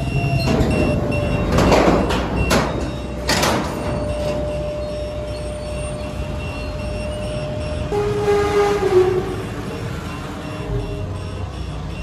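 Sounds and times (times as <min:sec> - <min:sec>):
hydraulic lift rumble: 0:00.0 - 0:10.9
wavering tone: 0:02.9 - 0:11.3.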